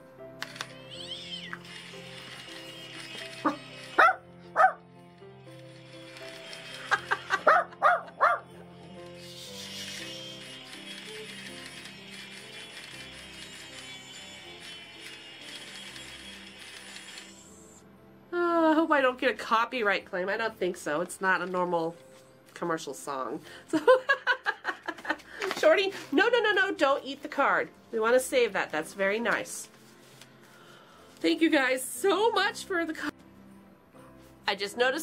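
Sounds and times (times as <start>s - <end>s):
dog barking: 4.0s - 4.8s, 7.4s - 8.5s.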